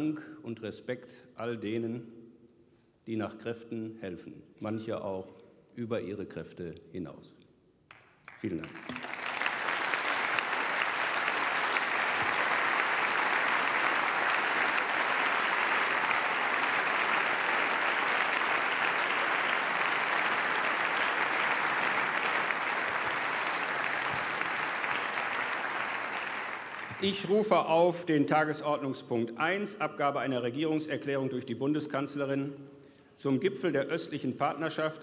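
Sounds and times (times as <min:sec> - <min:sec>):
people applauding: 0:07.9 - 0:27.5.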